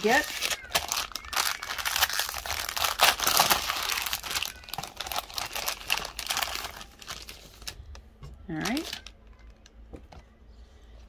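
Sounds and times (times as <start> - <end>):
foil wrapper rustling: 0.0 - 9.5.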